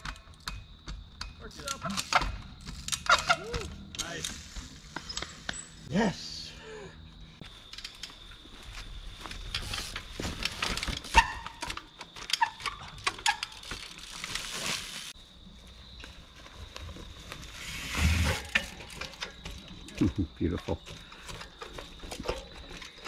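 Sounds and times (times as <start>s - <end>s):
bike tyres knocking on rock: 0.0s - 1.5s.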